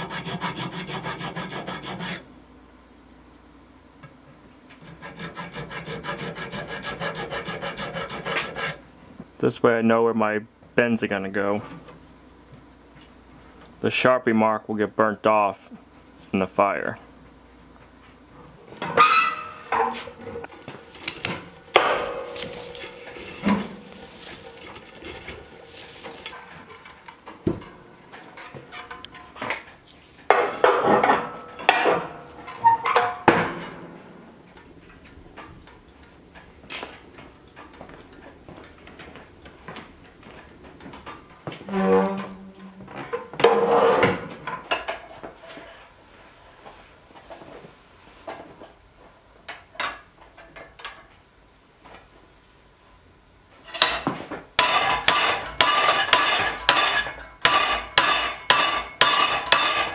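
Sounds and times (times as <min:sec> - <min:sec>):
metal clanking and scraping: 0:18.8 - 0:29.6, 0:30.3 - 0:34.0, 0:41.6 - 0:45.2, 0:53.6 - 0:59.9.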